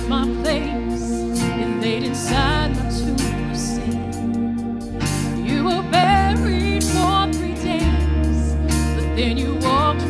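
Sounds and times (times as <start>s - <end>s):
woman singing: 0.0s - 4.6s, 5.4s - 10.0s
low bass notes: 0.0s - 10.0s.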